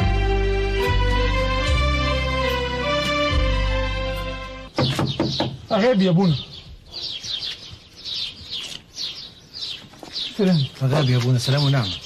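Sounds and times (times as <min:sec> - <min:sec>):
small birds chirping: 0:04.2 - 0:12.0.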